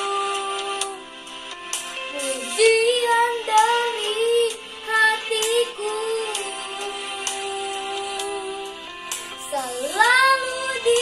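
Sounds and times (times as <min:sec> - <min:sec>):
boy singing: 0:00.0 - 0:01.0, 0:02.2 - 0:08.7, 0:09.4 - 0:11.0
backing track: 0:00.0 - 0:11.0.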